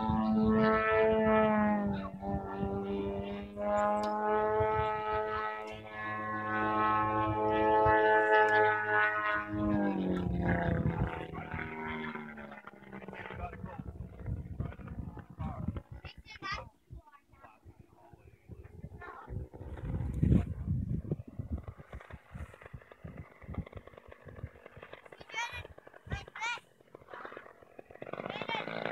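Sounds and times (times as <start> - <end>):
wind buffeting microphone: 0.0 - 26.4
model plane engine drone: 0.0 - 28.9.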